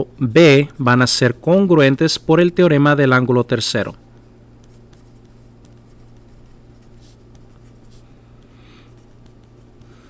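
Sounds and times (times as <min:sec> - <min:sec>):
steady low hum: 0:00.0 - 0:10.0
pencil writing on paper: 0:04.2 - 0:10.0.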